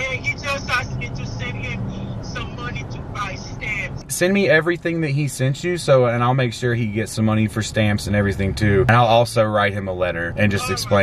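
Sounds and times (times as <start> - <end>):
low car hum: 0.0 - 11.0
tinny voice through phone speaker: 10.5 - 11.0.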